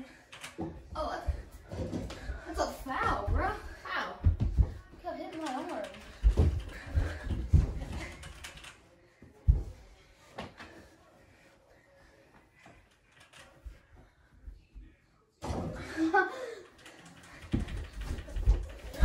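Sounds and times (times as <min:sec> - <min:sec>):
ball and feet thumping: 0:01.2 - 0:05.0, 0:06.2 - 0:08.0.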